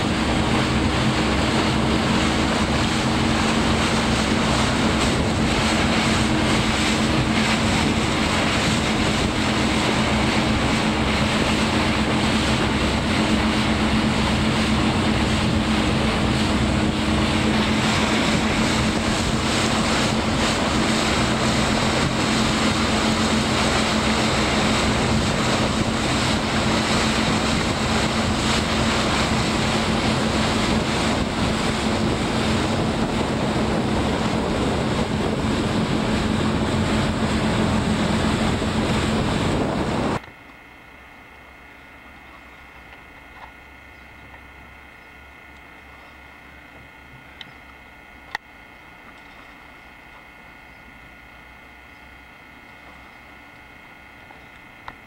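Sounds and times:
motorboat engine drone: 0:00.0 - 0:55.0
rushing wake water: 0:00.0 - 0:55.0.

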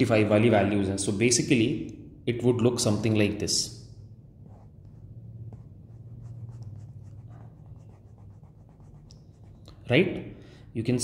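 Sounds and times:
low steady hum: 0:01.1 - 0:10.8
stylus scratching and tapping screen: 0:04.4 - 0:09.7.

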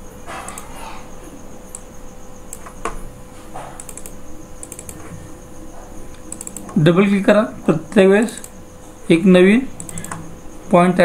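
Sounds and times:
faint steady hum: 0:00.0 - 0:11.0
mouse buttons clicking: 0:03.8 - 0:05.1, 0:06.2 - 0:06.8, 0:09.8 - 0:10.2.

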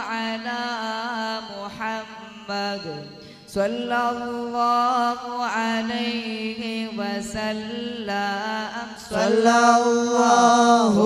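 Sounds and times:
person singing devotional chant: 0:00.0 - 0:11.0.

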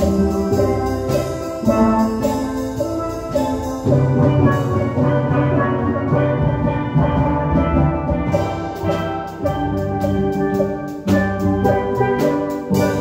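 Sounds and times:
drum kit beat: 0:00.0 - 0:13.0
steelpans playing melody: 0:00.0 - 0:13.0.

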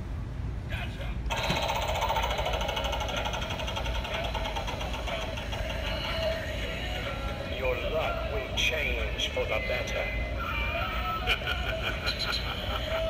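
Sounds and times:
rapid prize wheel clicking: 0:01.3 - 0:07.6.

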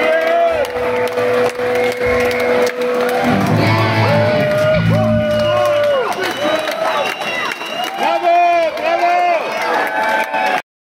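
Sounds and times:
bass guitar notes: 0:00.5 - 0:06.2
drum and cymbal hits: 0:00.7 - 0:06.3
held electric guitar tone: 0:00.8 - 0:05.9.

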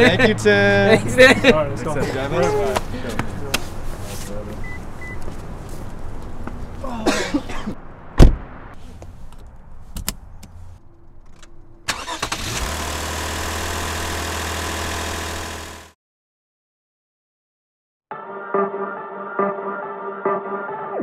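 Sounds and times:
car door slamming: 0:08.2 - 0:08.5
car engine idling: 0:11.5 - 0:15.9.

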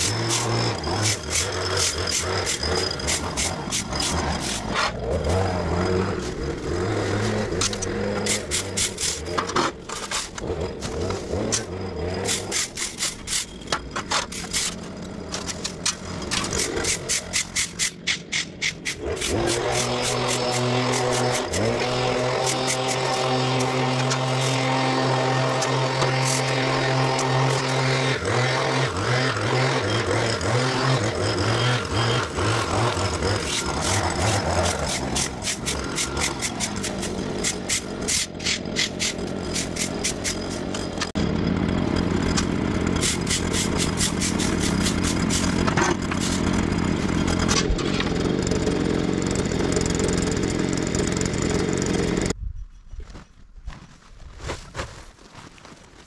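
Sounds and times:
hedge trimmer engine running: 0:00.0 - 0:52.4.

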